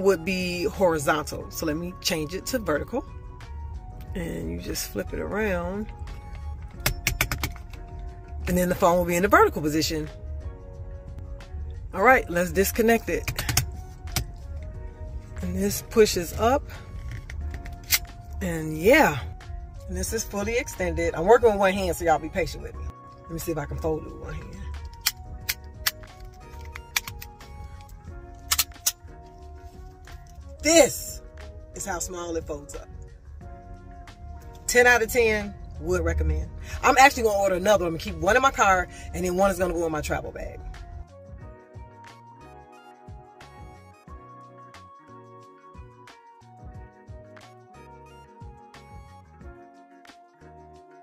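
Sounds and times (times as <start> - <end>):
quiet background music: 0.0 - 51.0
phone holder hinges clicking: 6.7 - 7.8
phone holder plastic clicks: 6.7 - 7.8, 24.8 - 27.9.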